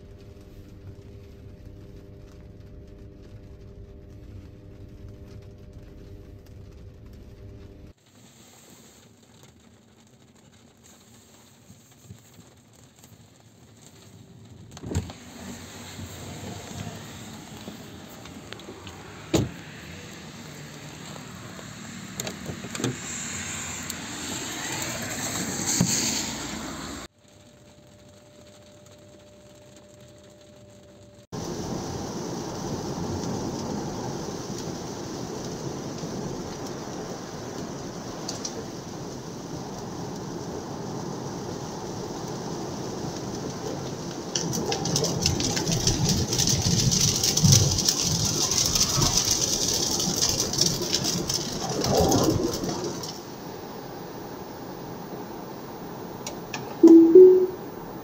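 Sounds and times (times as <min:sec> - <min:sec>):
tyres hissing on wet road: 0:07.9 - 0:27.4, 0:31.3 - 0:56.8
short two-note tone: 0:56.8 - 0:57.8.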